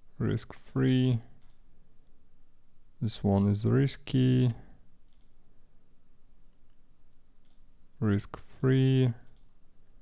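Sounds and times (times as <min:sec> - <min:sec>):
person speaking: 0:00.0 - 0:01.4, 0:02.9 - 0:04.9, 0:07.9 - 0:09.4
low room noise: 0:00.0 - 0:10.0
computer mouse clicks: 0:01.4 - 0:02.2, 0:05.0 - 0:05.4, 0:06.5 - 0:07.7, 0:09.2 - 0:09.6.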